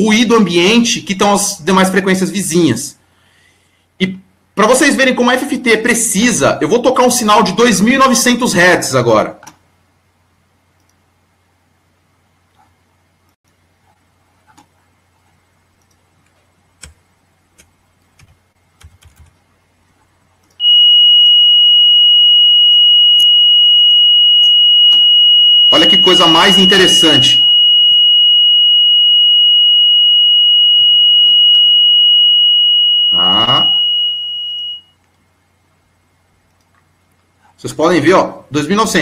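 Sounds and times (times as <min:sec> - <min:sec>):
sine test tone: 0:20.6 - 0:35.0.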